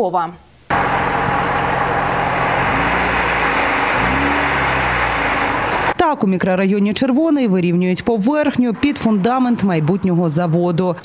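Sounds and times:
diesel truck engine revving: 0.7 - 6.0, 8.3 - 10.4
soil dumping rush: 0.7 - 6.0.

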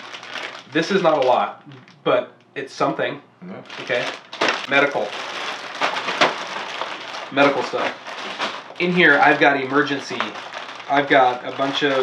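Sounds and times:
plastic bags crinkling: 0.0 - 1.8, 3.7 - 12.0.

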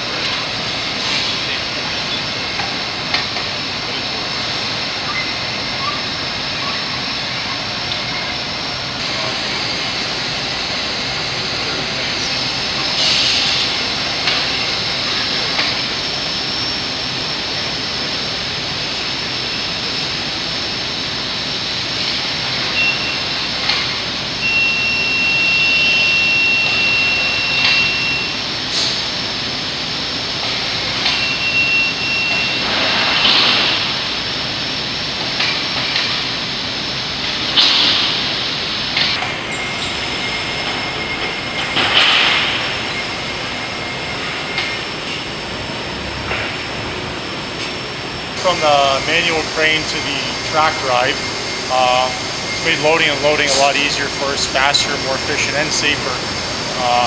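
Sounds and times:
factory machine hum: 0.0 - 57.0.

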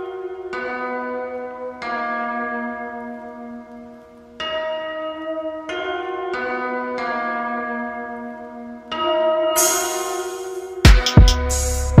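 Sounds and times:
slow chiming bell melody: 0.0 - 12.0.

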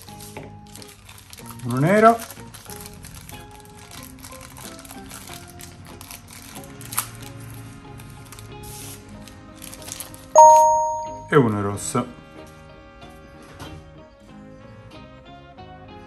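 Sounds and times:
tissue paper rustling: 0.0 - 7.0
soft background music: 0.0 - 16.0
electronic chime: 10.4 - 11.4.

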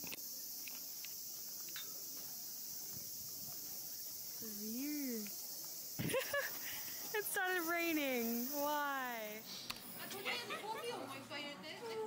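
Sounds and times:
cicadas chorus: 0.0 - 10.4.

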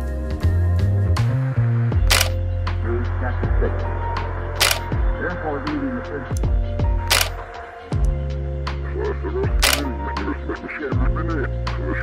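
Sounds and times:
background music with bass: 0.0 - 12.0
camera shutter click: 2.1 - 2.4, 4.6 - 4.9, 7.1 - 7.4, 9.6 - 9.9.

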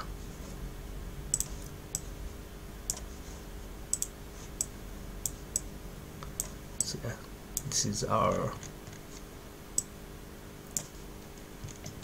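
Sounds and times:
faint low hum: 0.0 - 12.0
computer mouse buttons clicking: 1.3 - 2.1, 3.9 - 6.9.

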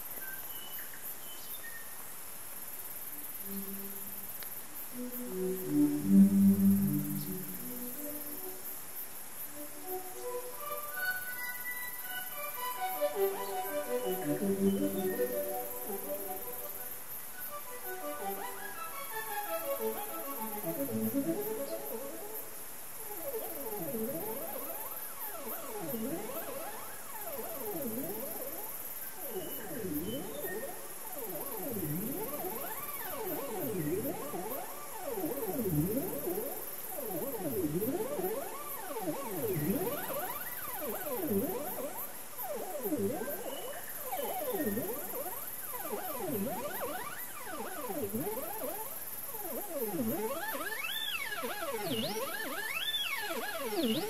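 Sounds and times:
steady high hiss: 0.0 - 54.0
gliding synth tones: 3.2 - 4.3, 5.0 - 8.6, 9.6 - 54.0.

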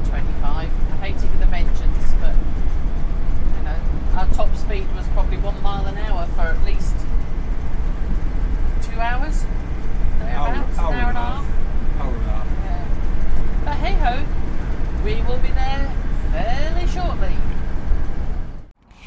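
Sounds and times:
road and engine rumble: 0.0 - 19.0
voices talking: 3.5 - 7.1, 8.7 - 14.4, 15.0 - 17.6.

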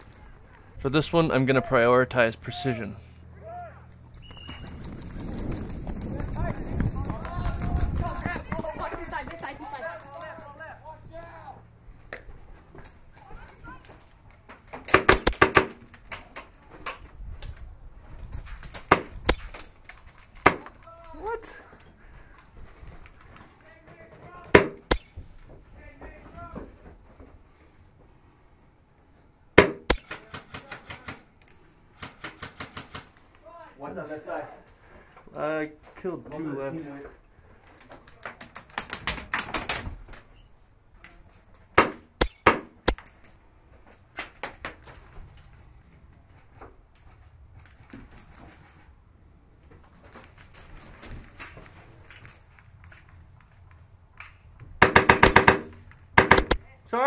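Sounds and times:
airsoft gun shots: 14.9 - 15.8, 24.5 - 25.3, 29.6 - 31.2, 41.8 - 43.0, 54.8 - 56.6.

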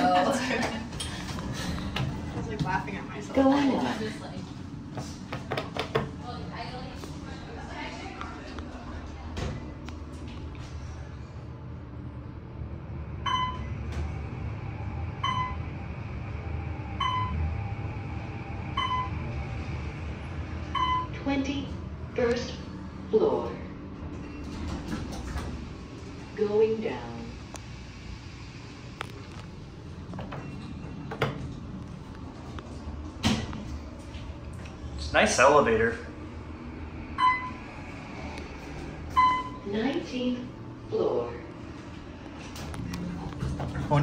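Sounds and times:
elevator doors sliding open: 0.0 - 4.2, 12.6 - 22.6, 23.5 - 35.5, 36.3 - 40.6, 41.8 - 44.0.

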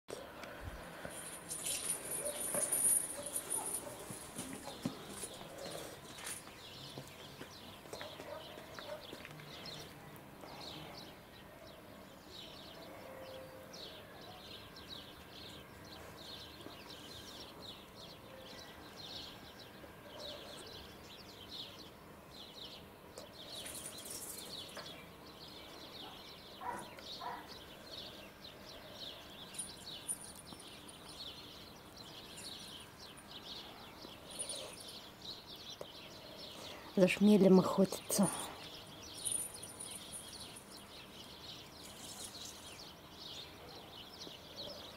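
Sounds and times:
small birds chirping: 0.1 - 44.9.

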